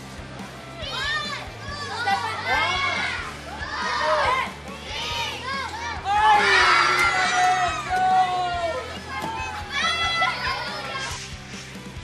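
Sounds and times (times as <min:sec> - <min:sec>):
children shrieking and laughing: 0:00.8 - 0:11.3.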